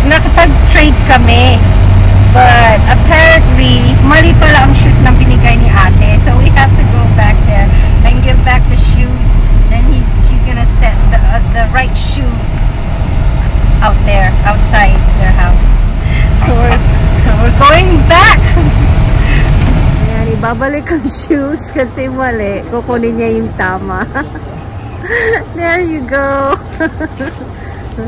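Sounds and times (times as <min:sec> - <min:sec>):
people talking: 0:00.0 - 0:01.6, 0:02.3 - 0:12.5, 0:13.8 - 0:28.0
car engine rumbling inside cabin: 0:00.0 - 0:28.0
people laughing: 0:23.9 - 0:25.5, 0:26.5 - 0:27.8.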